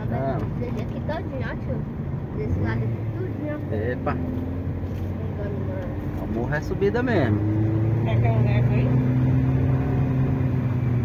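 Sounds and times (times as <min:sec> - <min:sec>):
car engine hum from cabin: 0:00.0 - 0:11.0.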